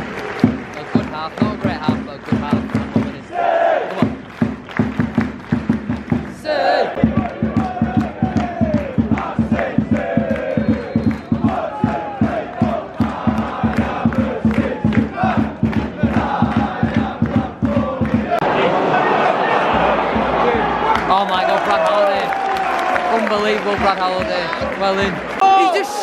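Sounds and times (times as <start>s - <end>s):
fast clapping: 0.0s - 3.2s, 3.9s - 18.4s, 20.9s - 25.5s
crowd chanting: 3.2s - 4.2s, 6.4s - 21.9s
crowd roar: 6.4s - 26.0s.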